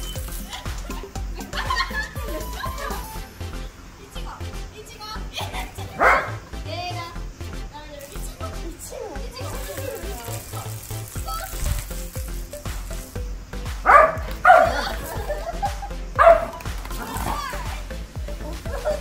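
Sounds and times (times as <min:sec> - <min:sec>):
background music: 0:00.0 - 0:19.0
voices: 0:00.0 - 0:19.0
dog barking: 0:06.0 - 0:06.4, 0:13.8 - 0:14.8, 0:16.2 - 0:16.6.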